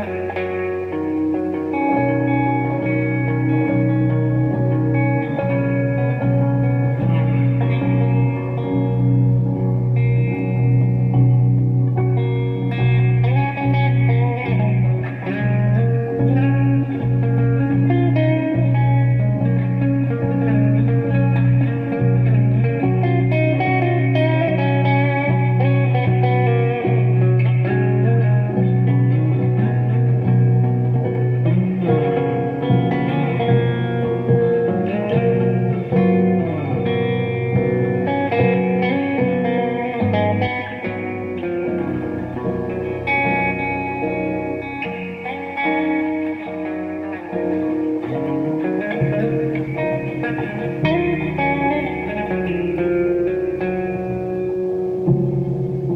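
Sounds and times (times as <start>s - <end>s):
electric guitar with reverb: 0.0s - 55.9s
shifting bass notes: 0.0s - 55.9s.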